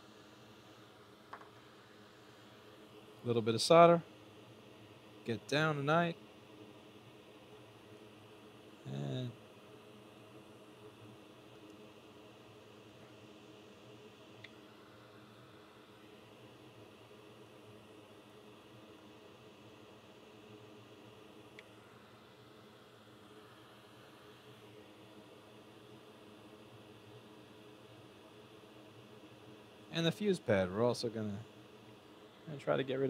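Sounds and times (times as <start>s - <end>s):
faint room hum and hiss: 0.0s - 33.0s.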